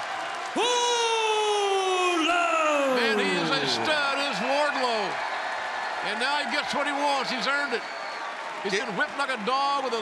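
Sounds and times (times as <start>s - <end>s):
crowd cheering: 0.0s - 10.0s
announcer shouting: 0.6s - 4.6s.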